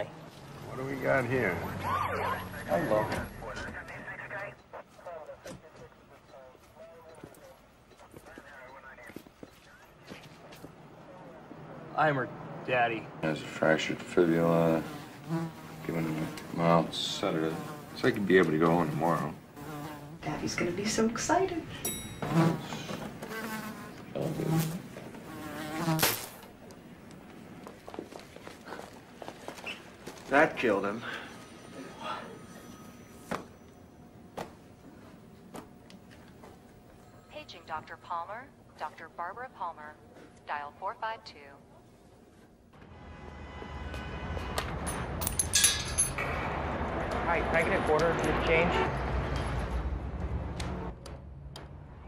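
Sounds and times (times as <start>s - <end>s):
low steady street rumble: 0.0s - 23.2s, 26.2s - 52.0s
housefly buzzing: 14.7s - 18.1s, 18.8s - 20.3s, 22.2s - 26.4s
bright metallic jingle: 21.7s - 22.8s, 31.0s - 34.2s, 44.8s - 46.4s.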